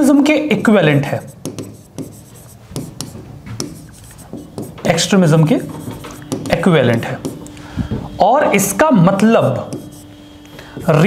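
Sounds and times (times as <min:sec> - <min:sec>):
chalk writing on a blackboard: 0:00.6 - 0:07.5, 0:09.5 - 0:10.2.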